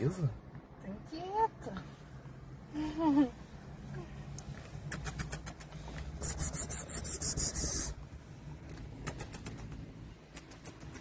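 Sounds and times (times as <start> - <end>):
scratchy rubbing on microphone: 4.9 - 8.0.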